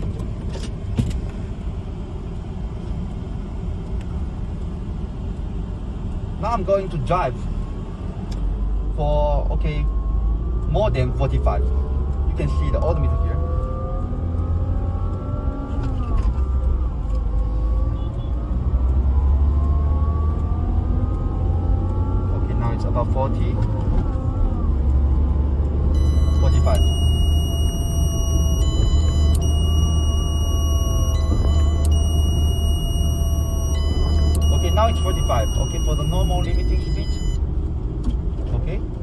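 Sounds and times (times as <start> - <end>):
deep road rumble: 0.0 - 39.0
car engine accelerating: 6.4 - 39.0
high electronic tones: 25.9 - 37.4.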